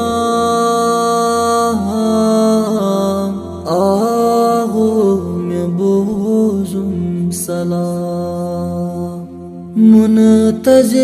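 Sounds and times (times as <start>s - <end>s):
man singing chant-like notes: 0.0s - 11.0s.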